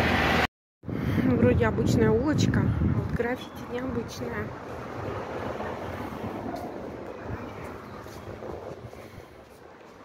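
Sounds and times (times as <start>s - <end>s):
street traffic: 0.0s - 10.0s
vehicle passing: 3.5s - 9.9s.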